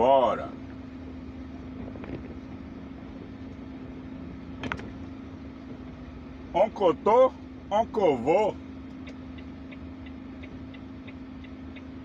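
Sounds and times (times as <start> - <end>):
diesel truck engine rumbling: 0.0 - 12.0.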